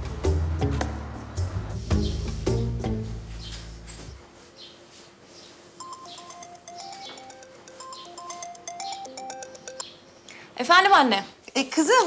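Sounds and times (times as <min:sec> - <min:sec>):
mobile phone ringtone: 0:05.8 - 0:10.0.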